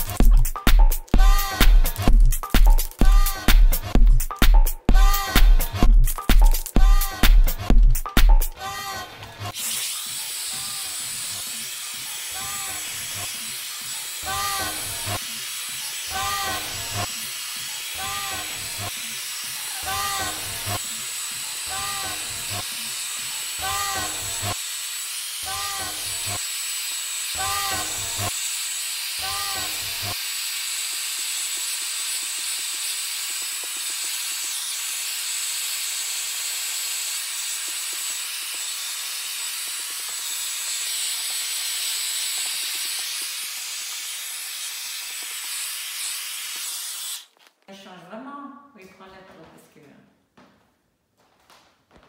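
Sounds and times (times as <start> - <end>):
hair dryer blowing: 8.4 - 47.3.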